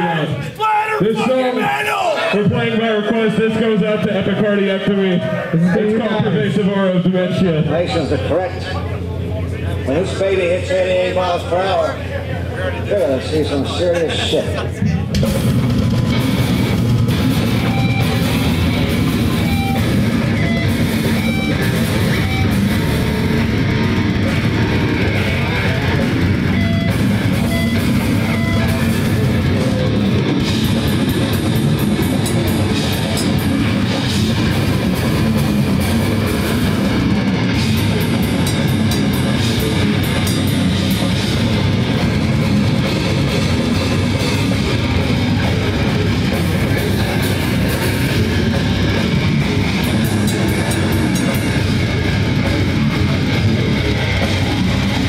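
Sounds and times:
bass guitar: 0:02.3 - 0:55.0
electric guitar: 0:12.4 - 0:55.0
drum kit with rapid cymbal hits: 0:12.9 - 0:55.0.

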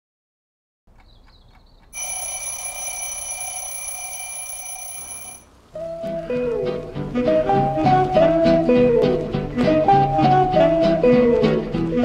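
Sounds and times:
metal bell ringing: 0:02.0 - 0:05.4.

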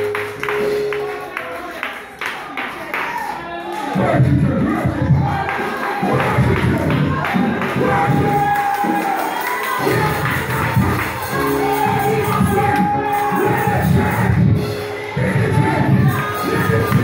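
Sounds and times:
congregation shouting and cheering: 0:00.0 - 0:17.0
live church praise music: 0:00.0 - 0:17.0.

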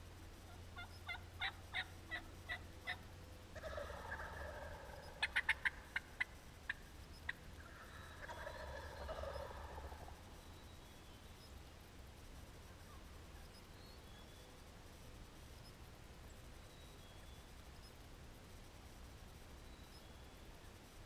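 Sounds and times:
wild turkeys calling: 0:00.5 - 0:10.4.

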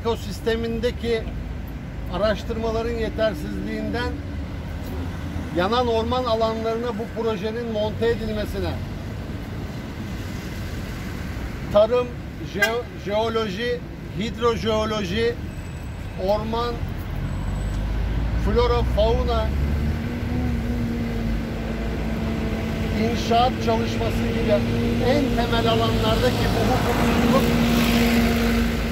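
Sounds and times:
street background rumble: 0:00.0 - 0:28.9.

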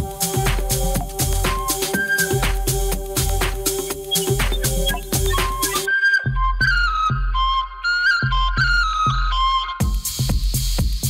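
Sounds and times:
electronic dance music: 0:00.0 - 0:05.9.

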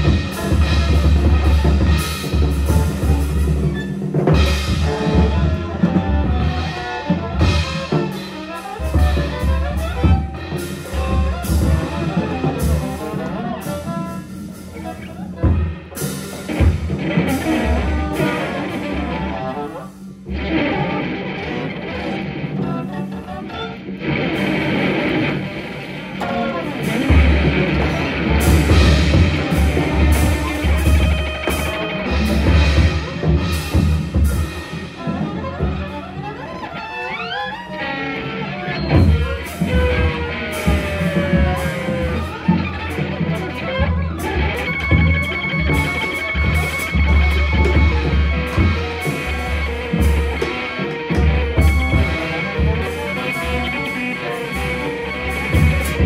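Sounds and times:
bowed viola: 0:00.0 - 0:56.0
drum kit: 0:00.0 - 0:56.0
electric guitar: 0:00.0 - 0:56.0.

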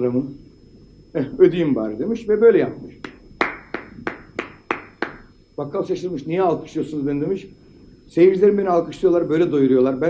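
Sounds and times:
man clapping hands: 0:03.0 - 0:05.3.

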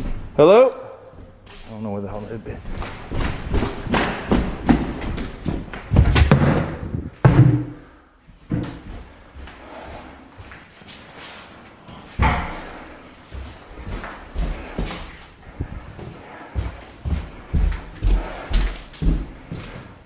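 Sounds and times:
thumps and knocks: 0:02.7 - 0:07.9.

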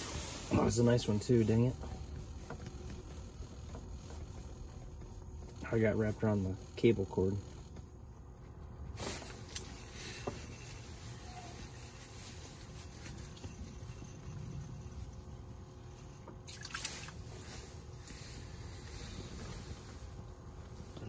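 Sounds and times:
low steady background hum: 0:00.0 - 0:21.0.

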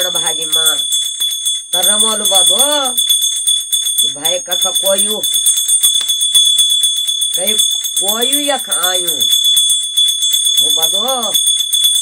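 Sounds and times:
hand bell ringing rapidly: 0:00.0 - 0:12.0.

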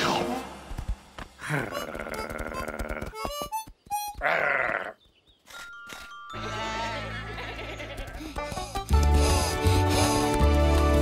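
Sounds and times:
cartoon sheep bleating: 0:01.4 - 0:03.3, 0:04.2 - 0:05.0, 0:06.4 - 0:08.0.

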